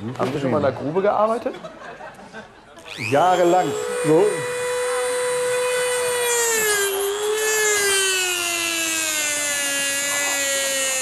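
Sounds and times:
rotary tool motor whine: 2.8 - 11.0
disc grinding tooth: 2.9 - 11.0.

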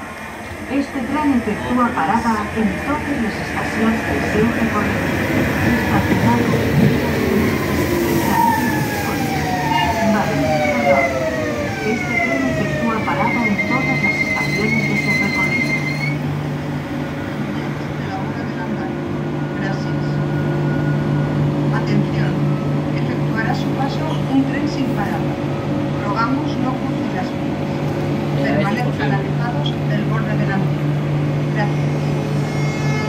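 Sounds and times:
train standing hum: 0.0 - 33.0.

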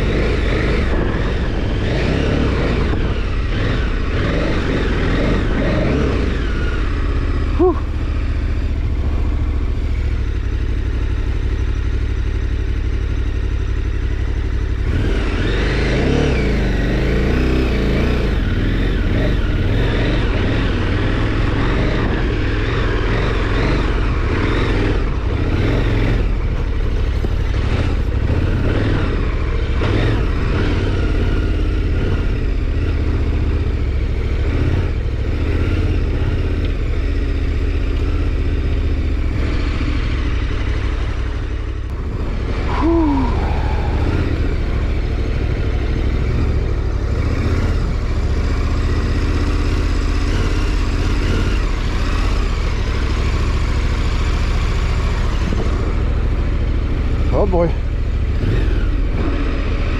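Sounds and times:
motorcycle engine running at low revs: 0.0 - 59.9.

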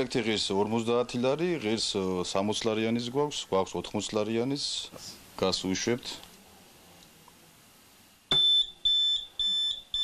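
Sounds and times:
gas detector alarm beeping: 8.3 - 10.0.

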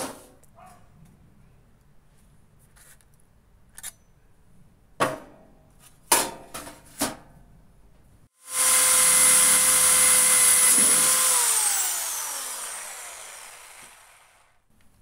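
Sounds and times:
electric drill on sheet metal: 8.4 - 14.6
drill trigger click: 9.4 - 14.4.

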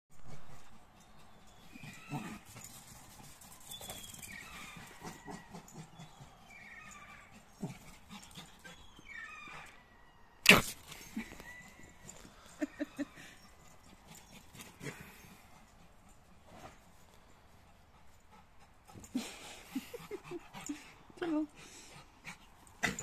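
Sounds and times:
small dog yelping and whining: 1.6 - 2.7, 3.8 - 15.0.

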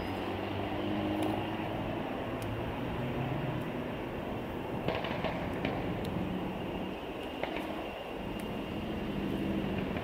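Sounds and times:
engine rumble: 0.0 - 10.0
road traffic noise: 0.0 - 10.0.

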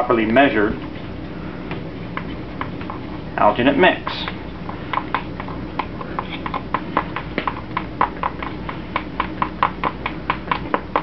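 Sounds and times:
spatula mixing paste in bowl: 0.7 - 11.0.

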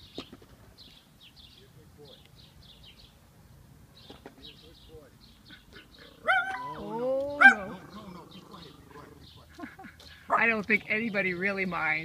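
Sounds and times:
dog barking in high yips: 6.2 - 7.7.

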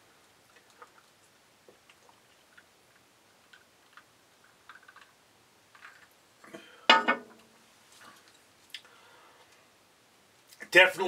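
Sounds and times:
glass clinking on wooden table: 6.9 - 7.4.

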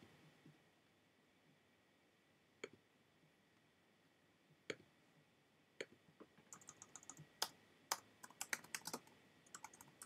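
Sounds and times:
typing on computer keyboard: 6.5 - 10.0.

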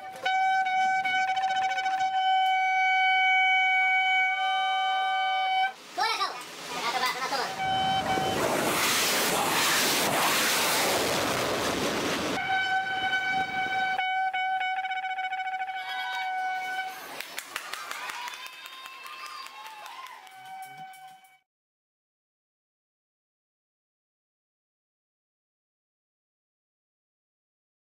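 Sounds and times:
shofar blasts: 0.0 - 5.8, 7.5 - 8.9, 12.4 - 17.1, 20.0 - 21.4
loud rushing noise: 6.6 - 13.8.

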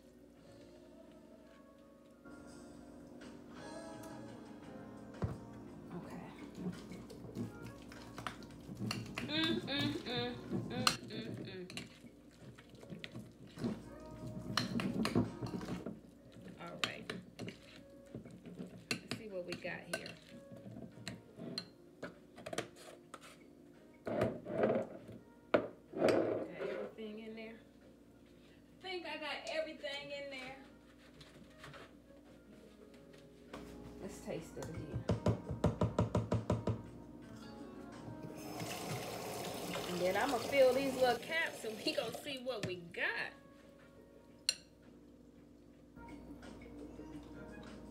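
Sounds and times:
background music: 0.0 - 47.9.

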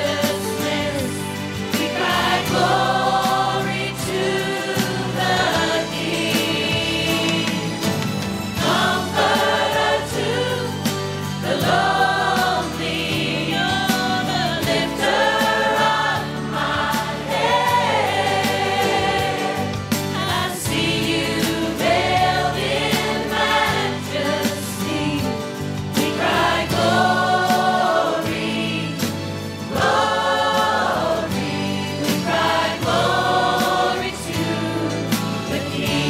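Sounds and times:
instrumental backing with bass: 0.0 - 36.0
women singing together: 0.0 - 36.0.

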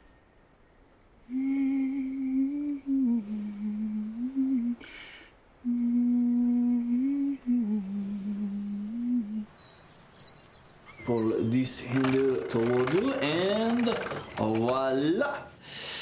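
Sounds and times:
woman humming: 1.2 - 4.9, 5.6 - 9.6.

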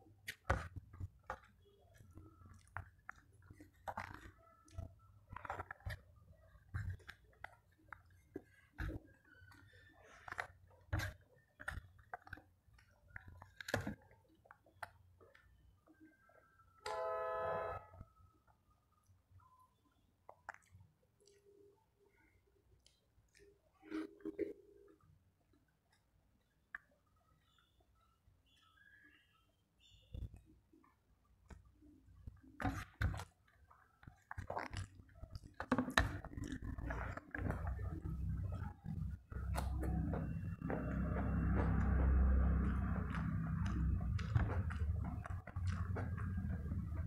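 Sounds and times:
person chewing with wet smacks: 0.0 - 16.0, 20.2 - 21.8, 30.2 - 47.0
horn blast: 16.9 - 17.8.

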